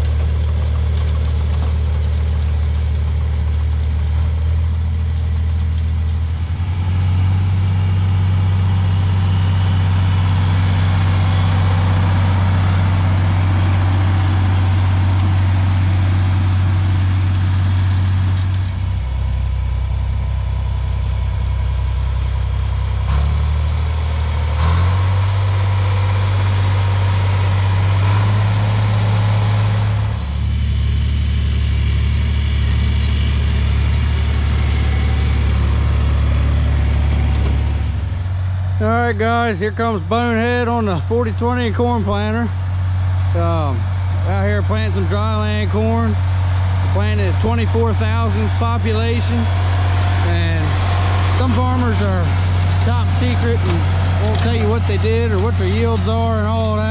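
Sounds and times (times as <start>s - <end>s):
tractor engine running under load: 0.0s - 56.9s.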